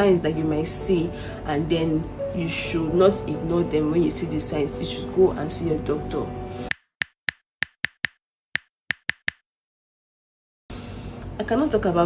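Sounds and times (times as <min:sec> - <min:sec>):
keyboard key clicks: 0:06.7 - 0:09.4.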